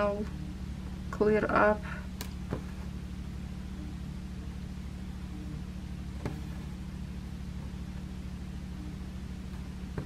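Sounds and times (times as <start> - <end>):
steady low hum: 0.0 - 10.0
soft tap: 2.2 - 2.8, 6.2 - 6.6.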